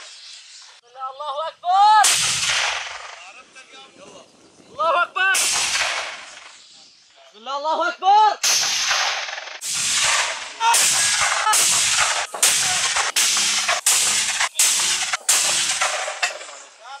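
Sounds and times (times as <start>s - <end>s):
mortar blasts with ringing echo: 2.0s - 3.2s, 5.4s - 6.5s, 8.4s - 16.8s.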